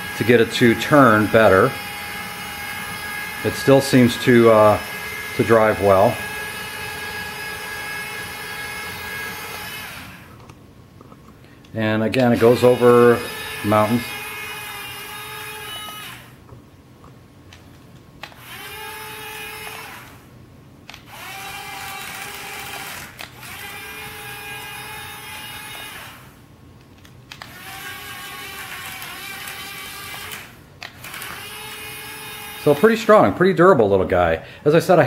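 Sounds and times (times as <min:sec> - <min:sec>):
electric motors whining: 0:00.0 - 0:10.6, 0:12.1 - 0:16.4, 0:18.2 - 0:20.3, 0:20.9 - 0:26.4, 0:27.3 - 0:33.3.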